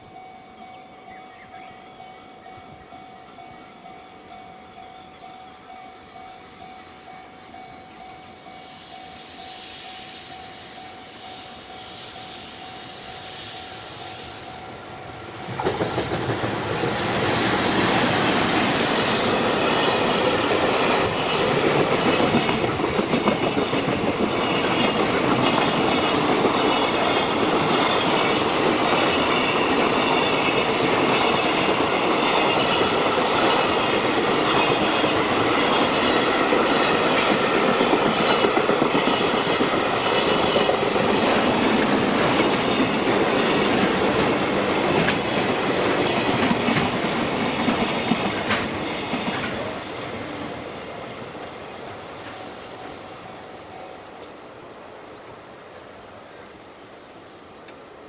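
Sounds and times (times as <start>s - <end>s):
freight train rolling past: 0.0s - 58.0s.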